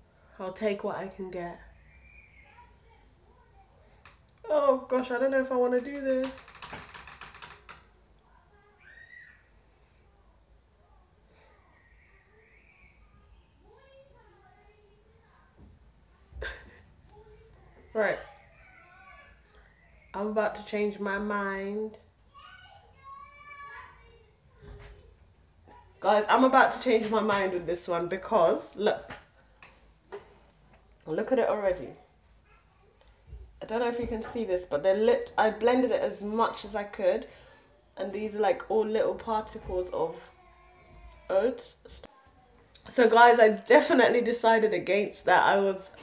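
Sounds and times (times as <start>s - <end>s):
faint high chirps: 1.6s - 4.0s, 8.3s - 15.8s, 17.1s - 20.6s.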